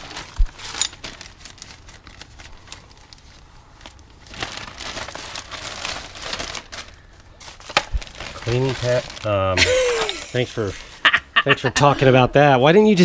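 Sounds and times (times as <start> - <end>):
plastic zipper bag crinkling: 0.0 - 9.7.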